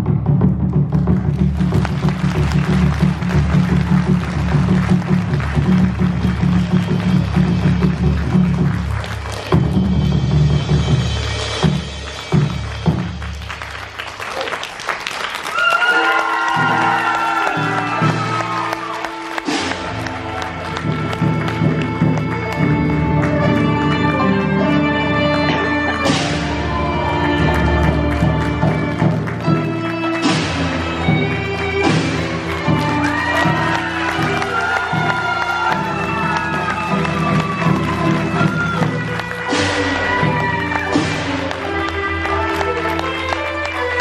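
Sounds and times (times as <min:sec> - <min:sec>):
melody instruments sliding notes: 0:17.5 - 0:44.0.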